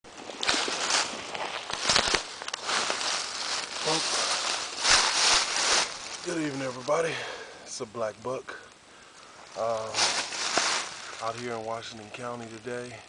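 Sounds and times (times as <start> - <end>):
footsteps crunching through dry leaves: 0.1 - 7.3, 9.4 - 11.9.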